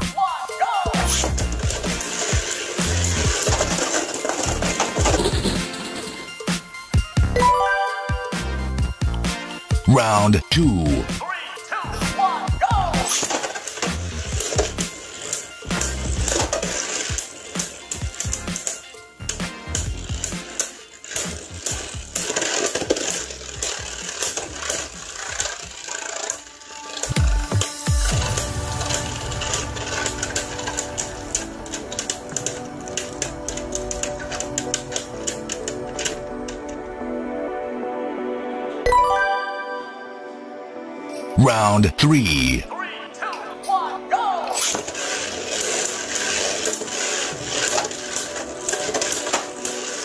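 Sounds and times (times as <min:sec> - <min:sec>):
spinning tops clacking: 0:01.1 - 0:08.5, 0:44.6 - 0:50.0.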